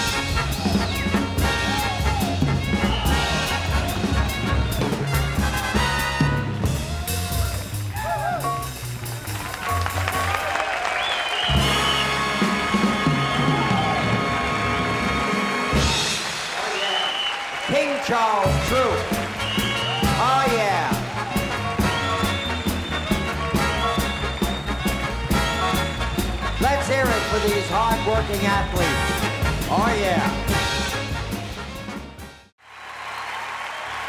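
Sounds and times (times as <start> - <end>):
held horn chords: 0.0 - 16.4, 18.4 - 32.5
swing band with brass: 0.0 - 32.5
people shouting: 0.3 - 4.2, 6.8 - 8.6.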